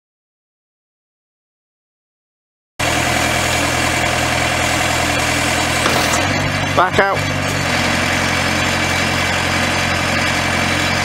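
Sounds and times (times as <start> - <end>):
diesel engine running: 2.8 - 11.0.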